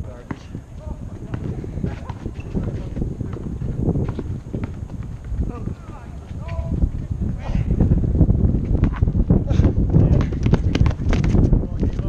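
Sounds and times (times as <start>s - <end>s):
basketball bouncing on asphalt: 0.0s - 6.6s, 10.0s - 12.0s
faint players' voices: 0.0s - 7.6s.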